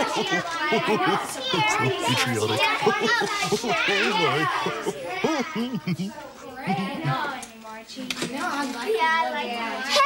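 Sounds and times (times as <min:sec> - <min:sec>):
children talking and laughing: 0:00.0 - 0:10.0.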